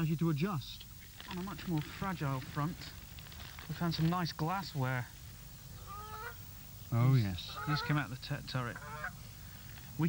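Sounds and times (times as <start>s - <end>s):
faint bird call: 5.5s - 8.1s.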